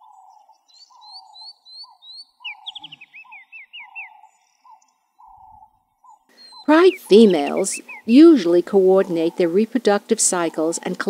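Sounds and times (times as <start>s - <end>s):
short rising bird chirps: 0.0s - 7.1s
repeated mid-pitched bird call: 0.0s - 9.5s.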